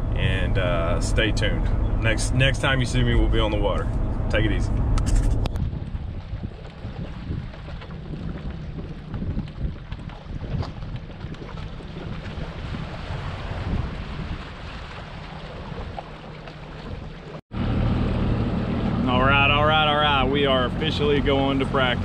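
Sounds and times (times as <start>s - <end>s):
wind buffeting microphone: 0.0s - 17.4s
outboard motor idling: 15.1s - 22.0s.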